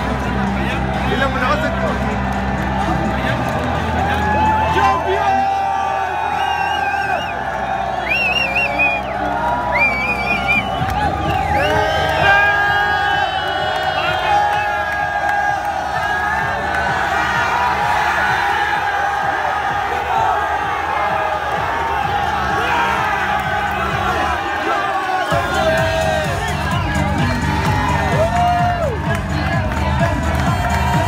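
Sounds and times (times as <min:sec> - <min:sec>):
stadium crowd cheering: 0:00.0 - 0:31.0.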